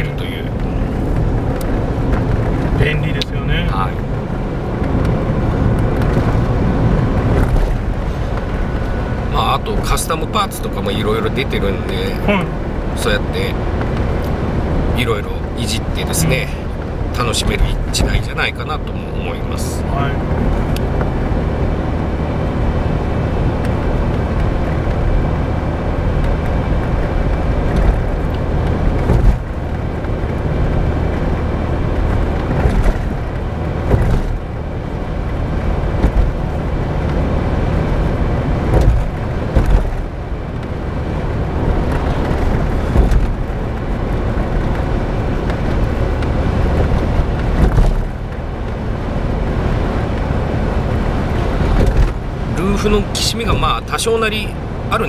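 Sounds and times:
car engine and road noise: 0:00.0 - 0:55.0
short sharp knocks or creaks: 0:27.6 - 0:29.6, 0:32.0 - 0:34.4, 0:35.9 - 0:36.4, 0:38.6 - 0:40.1, 0:41.8 - 0:43.5, 0:45.5 - 0:48.2, 0:51.6 - 0:52.2.

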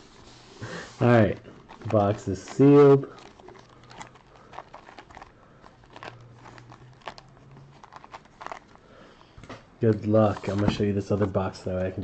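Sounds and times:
plastic shrink wrap crinkling: 0:00.0 - 0:09.2.

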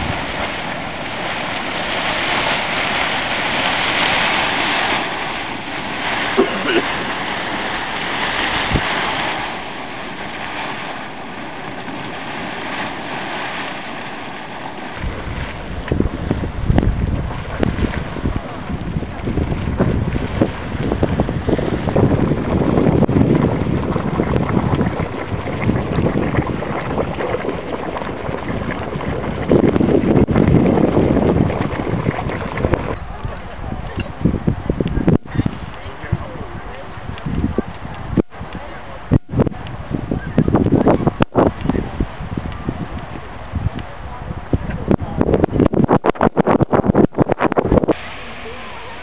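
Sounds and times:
hot spring splashing and gurgling: 0:00.0 - 0:49.0
wind buffeting microphone: 0:00.0 - 0:49.0.

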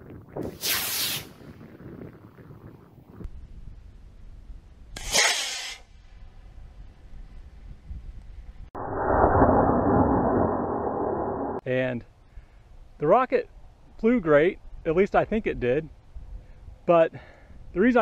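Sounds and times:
model rocket hissing whoosh: 0:00.6 - 0:01.3, 0:05.0 - 0:05.9
dull rushing noise: 0:08.8 - 0:11.6.

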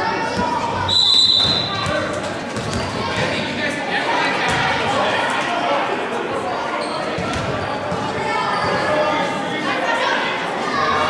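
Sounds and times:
chatter of people: 0:00.0 - 0:11.0.

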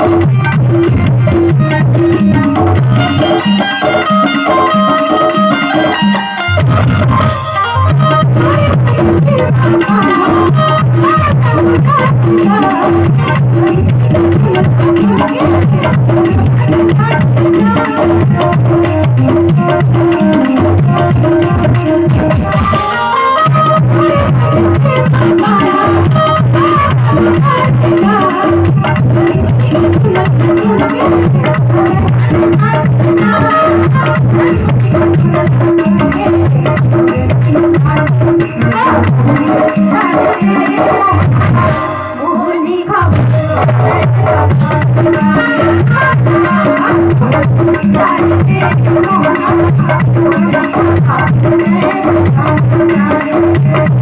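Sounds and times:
hand drum rhythm: 0:00.0 - 0:42.0, 0:43.1 - 0:54.0.

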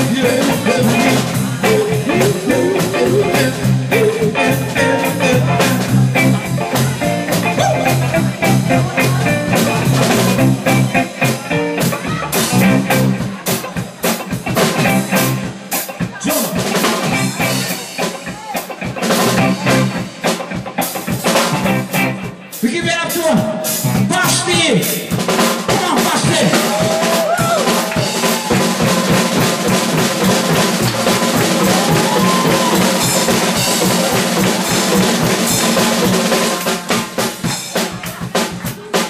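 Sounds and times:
electric guitars: 0:00.0 - 0:22.6, 0:26.2 - 0:39.0
bass guitar: 0:00.0 - 0:39.0
drum kit with cymbals: 0:00.0 - 0:39.0.

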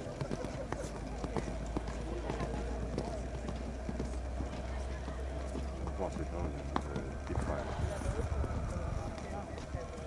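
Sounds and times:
people talking in background: 0:00.0 - 0:10.0
pony hoofbeats on sand: 0:00.0 - 0:10.0.

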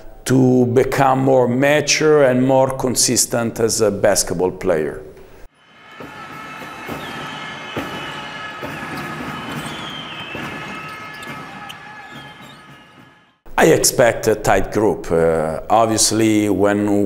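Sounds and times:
hall din: 0:05.7 - 0:13.5
basketball bouncing on court: 0:06.0 - 0:13.2
short high squeaks: 0:08.8 - 0:13.2.

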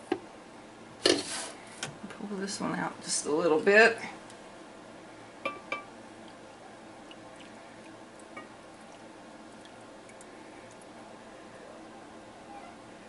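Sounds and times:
milk dripping into tray: 0:07.0 - 0:10.9.

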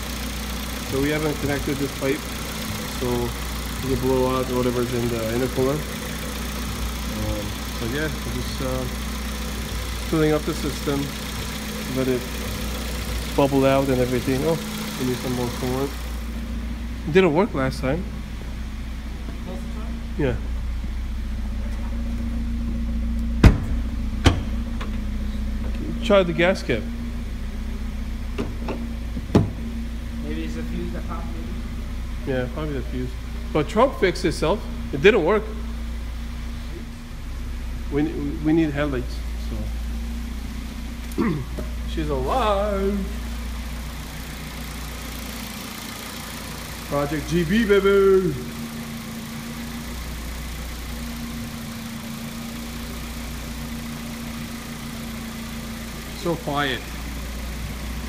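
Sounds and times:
car engine idling: 0:00.0 - 0:58.0
fuel filler door clicks: 0:23.4 - 0:25.0.

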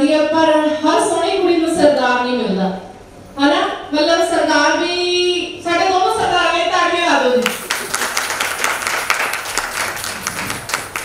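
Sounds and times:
audience applause: 0:07.4 - 0:11.0.

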